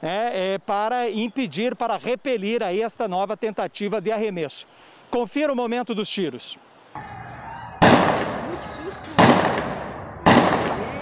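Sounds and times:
gunshots echoing: 7.0 - 11.0.

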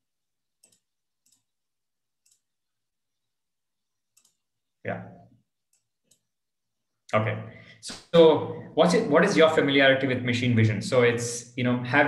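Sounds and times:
computer mouse clicks: 0.6 - 1.5, 2.2 - 2.5, 4.1 - 4.5, 5.7 - 6.3.

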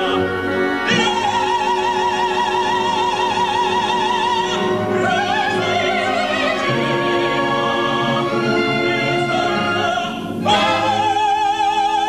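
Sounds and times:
operatic singing: 0.0 - 12.0
orchestra playing: 0.0 - 12.0.

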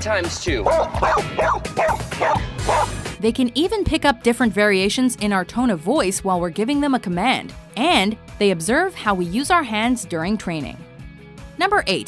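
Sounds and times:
dog barking: 0.6 - 3.0.

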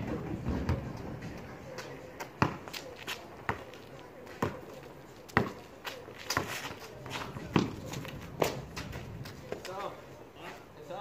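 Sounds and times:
basketball bouncing on concrete: 0.0 - 9.7
sneakers shuffling: 0.0 - 11.0.

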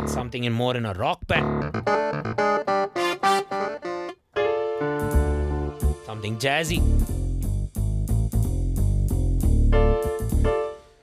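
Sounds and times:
strong bass: 0.0 - 0.3, 6.7 - 10.6
jazzy piano notes: 1.4 - 6.0, 9.7 - 11.0.

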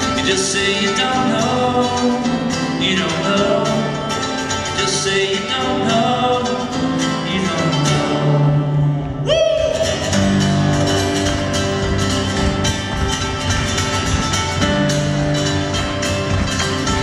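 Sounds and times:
acoustic guitar strummed fast: 0.0 - 17.0.

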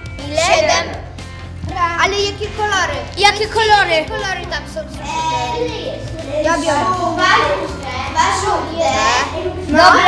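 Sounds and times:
children talking: 0.1 - 10.0.

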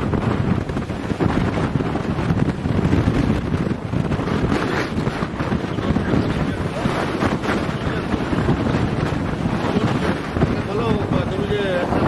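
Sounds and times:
storm wind buffeting microphone: 0.0 - 12.0.

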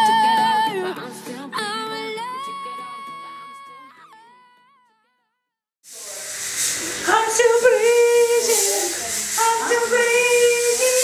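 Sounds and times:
sudden hissing noise: 5.9 - 11.0.

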